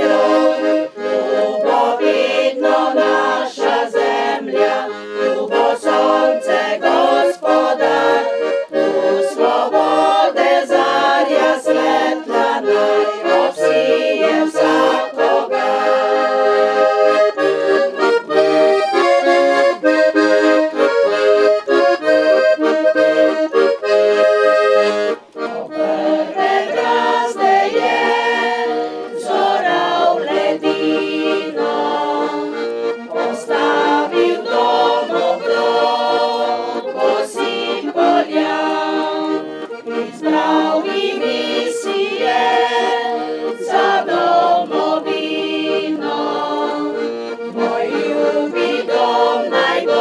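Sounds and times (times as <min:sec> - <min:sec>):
accordion tune: 0:00.0 - 0:50.0.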